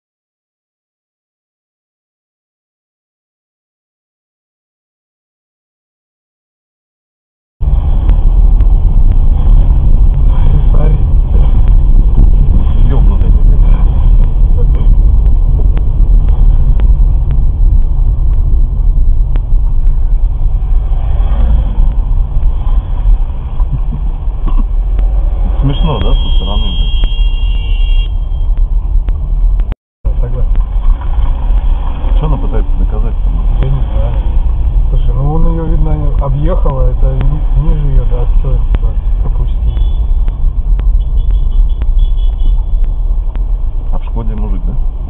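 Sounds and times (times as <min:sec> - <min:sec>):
car engine and tyres rumbling: 0:07.6 - 0:45.0.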